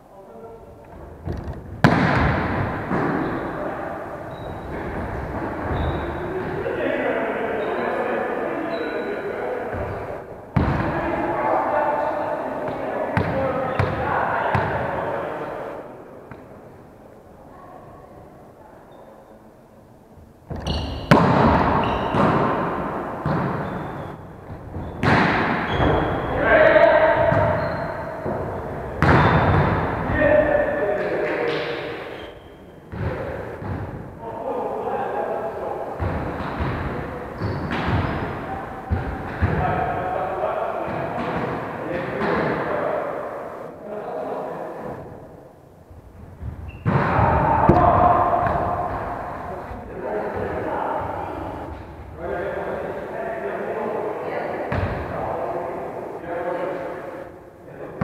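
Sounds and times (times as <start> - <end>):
players' voices echoing: 0.0 - 58.0
volleyballs hit and bouncing: 0.8 - 3.7, 9.7 - 11.3, 20.5 - 26.4, 27.0 - 32.0, 32.9 - 34.1, 35.9 - 40.0, 40.8 - 42.7, 46.4 - 51.9.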